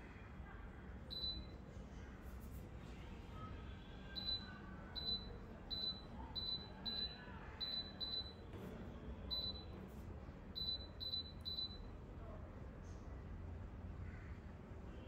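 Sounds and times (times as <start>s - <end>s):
oven key-press beeps: 1.1s - 1.5s, 4.2s - 8.4s, 9.3s - 9.7s, 10.6s - 11.8s.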